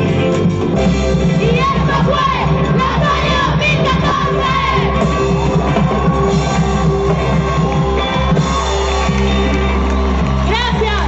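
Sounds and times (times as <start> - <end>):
live band music on loudspeakers: 0.0 - 11.0
audience shouting along: 1.6 - 11.0.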